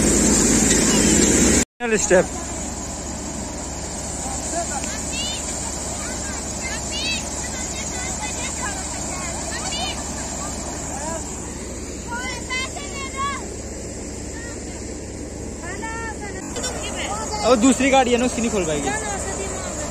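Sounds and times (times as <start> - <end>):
threshing machine running: 0.0 - 19.9.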